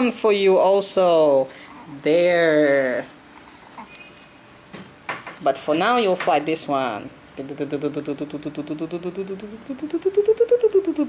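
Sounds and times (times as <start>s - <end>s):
person singing repeated syllables: 7.4s - 11.0s.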